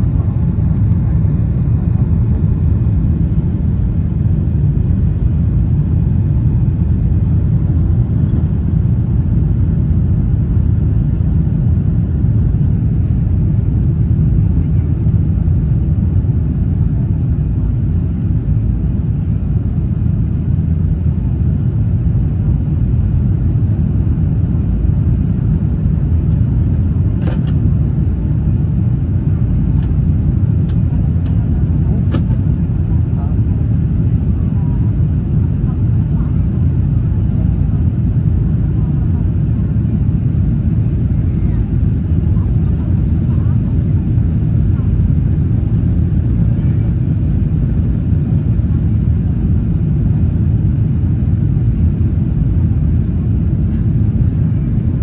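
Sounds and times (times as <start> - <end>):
jet engine cabin rumble: 0.0 - 55.0.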